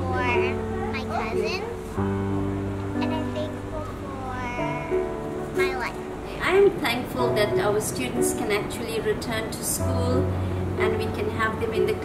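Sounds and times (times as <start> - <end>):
soft background music: 0.0 - 12.0
child meowing like a cat: 3.0 - 5.0.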